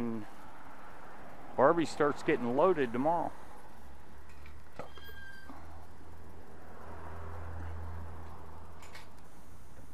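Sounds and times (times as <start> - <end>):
short high-pitched squeak: 4.8 - 5.6.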